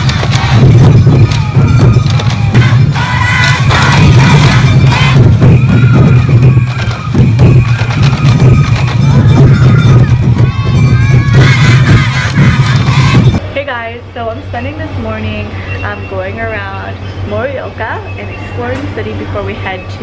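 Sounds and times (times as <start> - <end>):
flute melody: 0.0 - 13.4
taiko drums beating: 0.0 - 13.4
crowd voices: 0.0 - 20.0.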